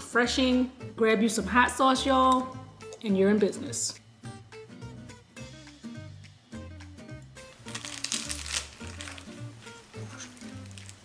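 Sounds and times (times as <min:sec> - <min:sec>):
music with plucked notes and bass: 0:04.3 - 0:07.6
crackly rustle: 0:07.6 - 0:11.0.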